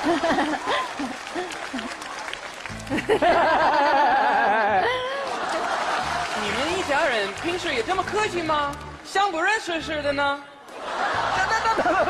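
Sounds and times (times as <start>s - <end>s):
audience laughing: 0.0s - 7.4s, 10.7s - 12.0s
audience clapping: 0.0s - 9.4s.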